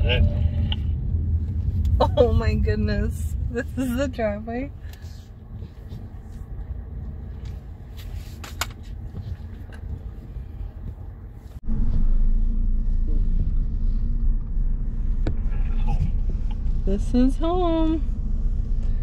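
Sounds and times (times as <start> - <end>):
car driving rumble inside cabin: 0.0 - 19.0.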